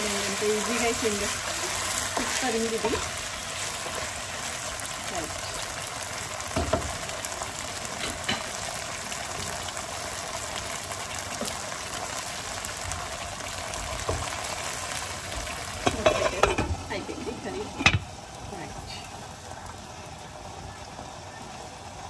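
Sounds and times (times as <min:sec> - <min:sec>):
curry sizzling and bubbling in pan: 0:00.0 - 0:22.0
wooden spatula knocking pan: 0:06.6 - 0:07.0.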